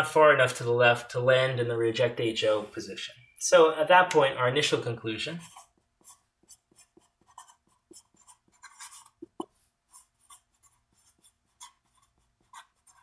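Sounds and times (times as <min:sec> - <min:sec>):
marker writing on paper: 0:05.4 - 0:13.0.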